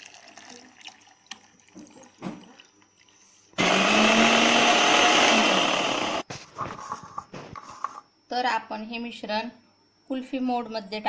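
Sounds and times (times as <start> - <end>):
mixer grinder motor humming: 3.6 - 6.2.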